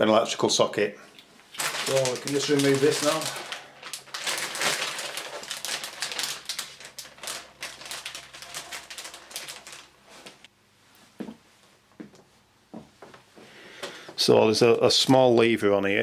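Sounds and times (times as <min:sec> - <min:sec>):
plastic bag crinkling: 0:01.5 - 0:10.5.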